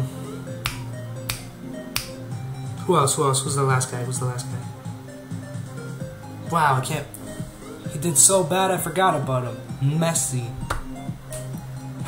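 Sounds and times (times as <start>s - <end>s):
fingers snapping: 0.6s - 2.2s, 10.7s - 11.7s.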